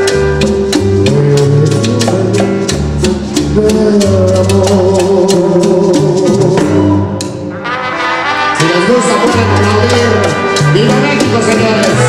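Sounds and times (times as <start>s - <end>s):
congas: 0.0s - 12.0s
tropical dance band music: 0.0s - 12.0s
brass section playing: 6.2s - 12.0s.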